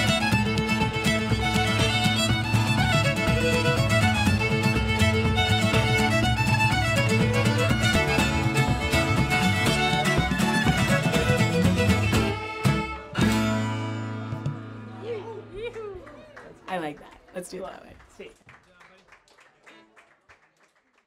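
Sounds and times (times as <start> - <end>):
fiddle tune: 0.0 - 15.7
guitar accompaniment: 0.0 - 16.1.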